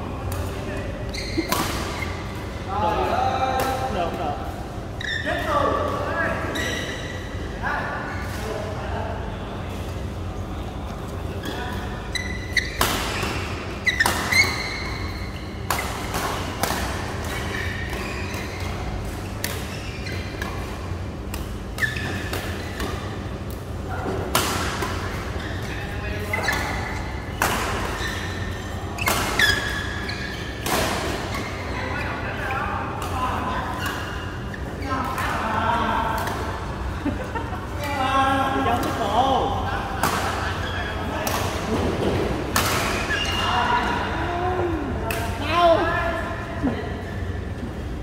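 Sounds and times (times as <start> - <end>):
shoes squeaking on court: 0.4 - 2.5, 4.8 - 7.4, 10.8 - 23.8, 24.6 - 32.2, 42.6 - 44.0.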